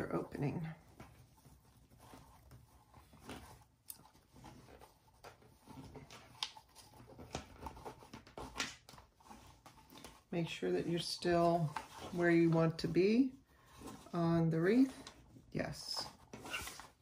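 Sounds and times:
ribbon rustling and scraping: 0:00.0 - 0:17.0.

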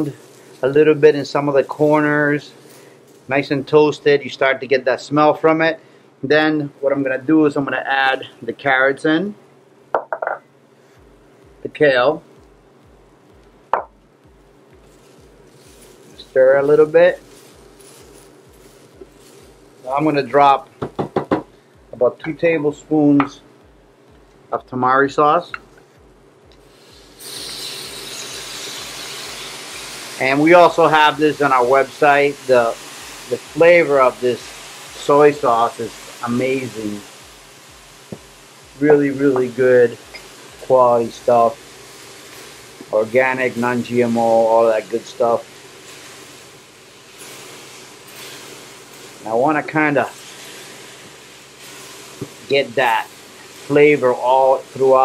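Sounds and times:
man talking: 0:00.0 - 0:02.6, 0:03.3 - 0:09.4, 0:11.6 - 0:12.3, 0:16.2 - 0:17.3, 0:19.8 - 0:20.7, 0:22.0 - 0:23.5, 0:24.5 - 0:25.6, 0:30.2 - 0:37.1, 0:38.8 - 0:41.6, 0:42.9 - 0:45.4, 0:49.2 - 0:50.2, 0:52.4 - 0:53.1, 0:53.7 - 0:55.0
vegetables sizzling in a pan: 0:00.0 - 0:06.0, 0:10.8 - 0:55.0.

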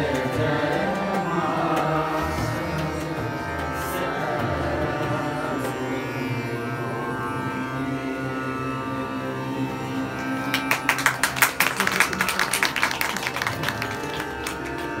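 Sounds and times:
harmonium holding notes: 0:00.0 - 0:15.0
tanpura drone: 0:00.0 - 0:15.0.

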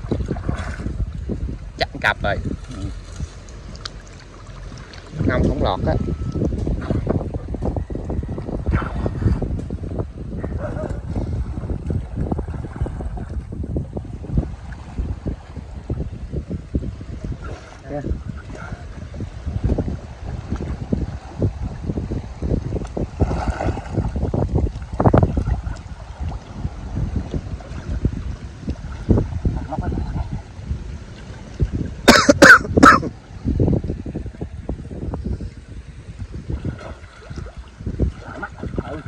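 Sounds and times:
water sloshing and lapping: 0:00.0 - 0:39.0
wind buffeting microphone: 0:00.0 - 0:39.0.

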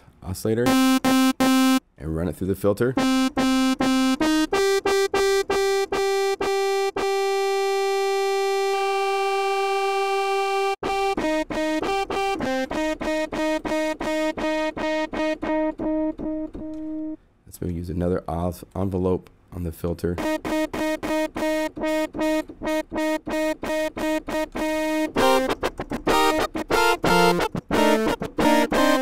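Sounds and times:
pulsing synthesizer notes: 0:00.7 - 0:01.8, 0:03.0 - 0:15.0.

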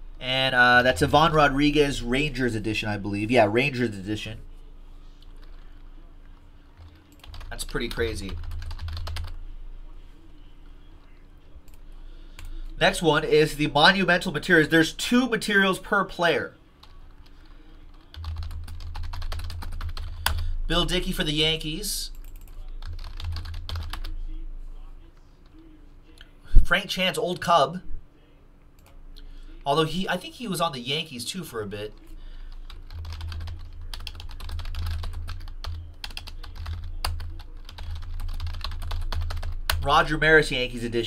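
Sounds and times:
computer keyboard typing: 0:05.2 - 0:05.6, 0:06.8 - 0:09.4, 0:16.8 - 0:20.4, 0:22.1 - 0:24.1, 0:32.0 - 0:39.9.

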